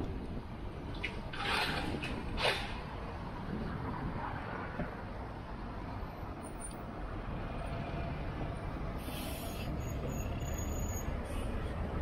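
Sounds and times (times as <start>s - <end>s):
traffic engine rumble: 0.0s - 12.0s.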